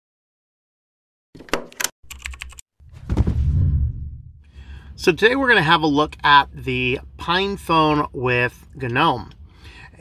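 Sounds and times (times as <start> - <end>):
louder deeper sound: 2.9 - 4.5.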